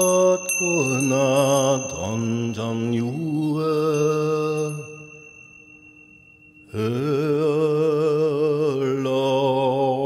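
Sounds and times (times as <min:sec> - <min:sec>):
steady high tone: 0:00.0 - 0:08.8.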